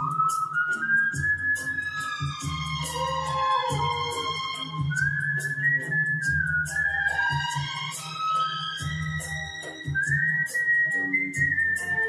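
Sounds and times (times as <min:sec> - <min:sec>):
karaoke backing track: 0:00.0 - 0:12.0
person whistling a melody: 0:00.0 - 0:12.0.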